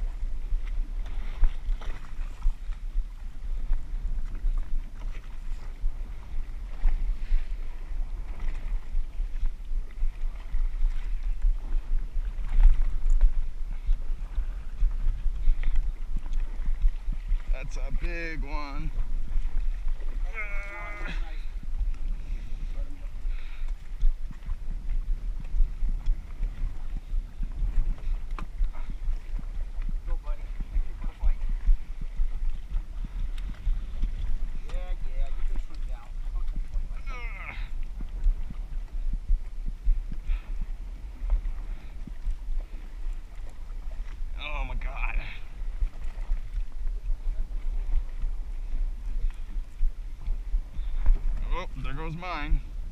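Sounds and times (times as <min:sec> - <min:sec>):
faint water and boat noise: 0:00.0 - 0:52.9
wind buffeting microphone: 0:00.0 - 0:52.9.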